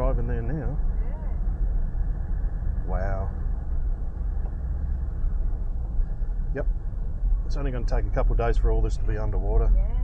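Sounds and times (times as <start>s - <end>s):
vehicle wind and road noise: 0.0s - 10.0s.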